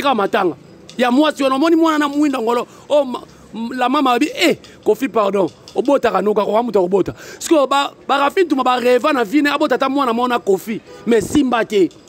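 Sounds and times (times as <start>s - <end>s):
man speaking forcefully: 0.0s - 11.9s.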